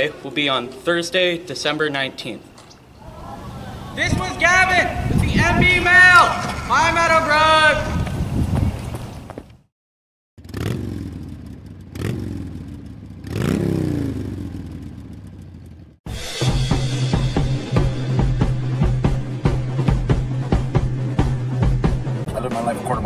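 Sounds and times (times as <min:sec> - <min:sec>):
music with drum beat: 0:16.1 - 0:23.0.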